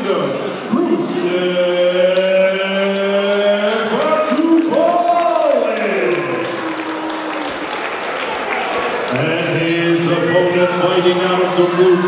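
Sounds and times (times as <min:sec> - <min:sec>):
announcer's amplified voice: 0:09.1 - 0:12.0.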